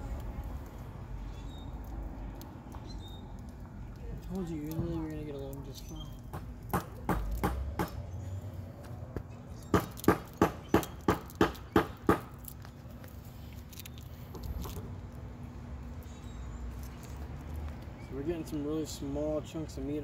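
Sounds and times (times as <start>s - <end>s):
low steady rumble: 0.0s - 9.7s
sharp knocks: 6.3s - 8.0s, 9.7s - 12.3s.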